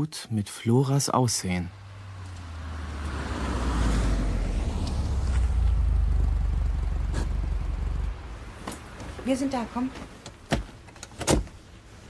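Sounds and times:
faint low rumble: 4.5s - 8.6s
car door clicking: 10.2s - 11.6s
car door clunk: 10.3s - 11.6s.

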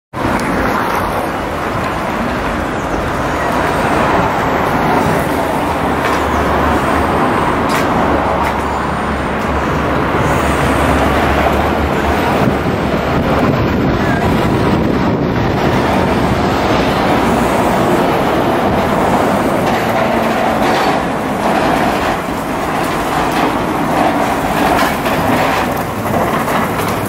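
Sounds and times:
city street traffic: 0.1s - 27.0s.

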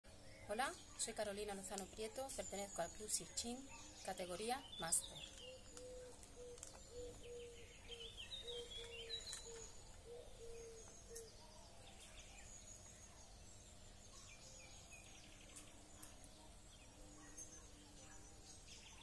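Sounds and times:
higher bird chirps: 0.2s - 19.0s
bird repeating low note: 3.8s - 12.5s.

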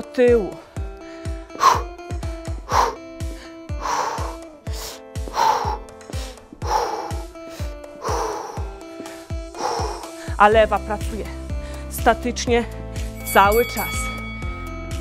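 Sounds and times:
upbeat workout music: 0.0s - 15.0s.

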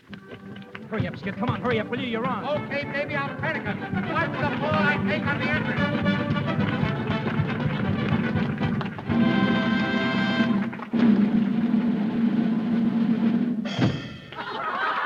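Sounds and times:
orchestra playing brisk stage music: 0.1s - 11.1s
sudden crash: 10.9s - 14.4s.

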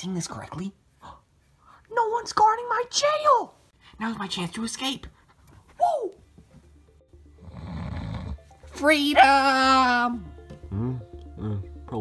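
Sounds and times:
person shouting woo: 5.8s - 6.2s.

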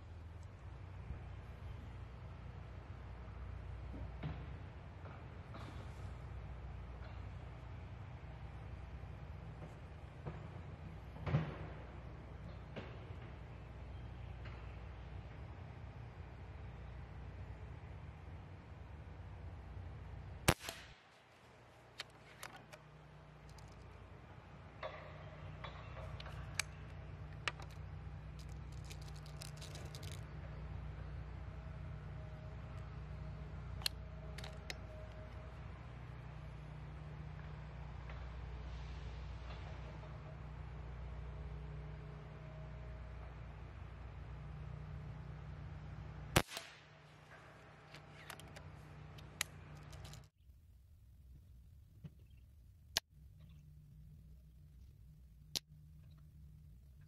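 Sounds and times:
air rifle shot: 20.5s - 21.2s, 46.4s - 46.9s.

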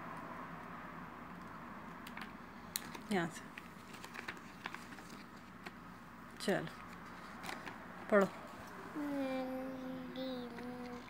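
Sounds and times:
room background hiss: 0.0s - 11.0s.

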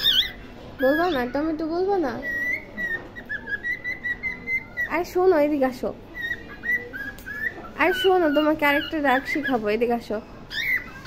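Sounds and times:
cockatiel whistling: 0.0s - 1.2s, 2.2s - 5.2s, 6.1s - 9.6s, 10.5s - 11.0s.

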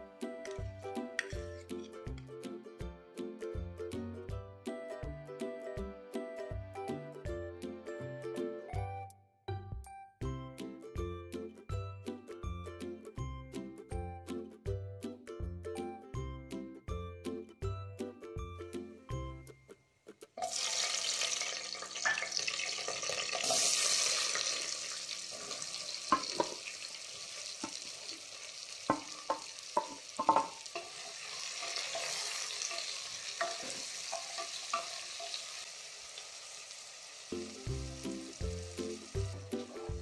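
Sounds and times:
background music: 0.0s - 24.8s, 37.1s - 40.0s
spices sizzling in hot oil: 20.4s - 40.0s.

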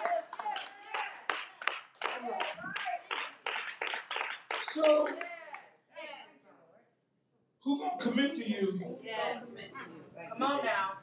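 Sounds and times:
hands clapping in rhythm: 0.0s - 5.7s.

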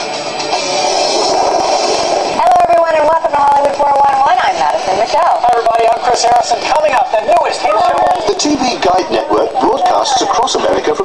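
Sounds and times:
tv title music: 0.0s - 6.7s.

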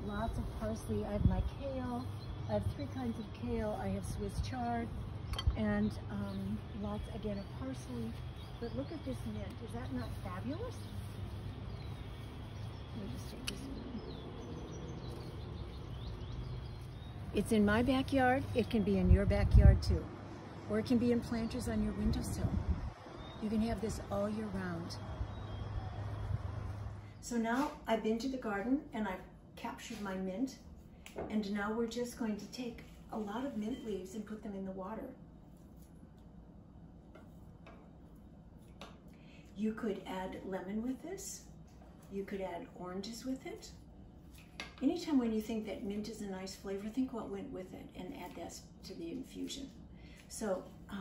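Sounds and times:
outdoor background rumble: 0.0s - 27.4s
low room hum: 0.0s - 51.0s.

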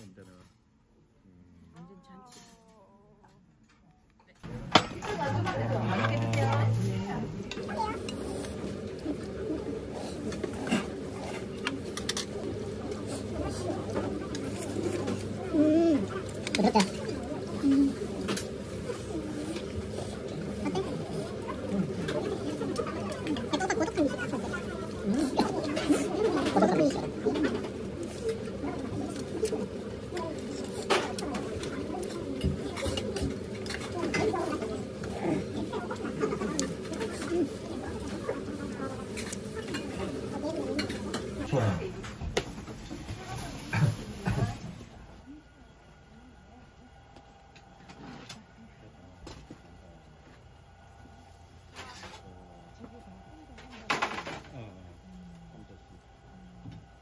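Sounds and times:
murmur of indistinct voices: 4.3s - 57.0s.

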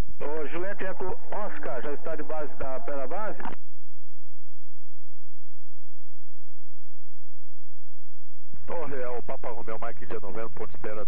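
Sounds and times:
faint low hum: 0.0s - 11.0s
voice over aircraft radio: 0.2s - 3.6s, 8.6s - 11.0s.

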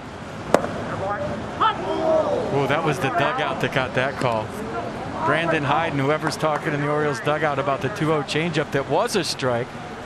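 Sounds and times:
baseball hitting catcher's mitt: 0.5s - 0.8s.

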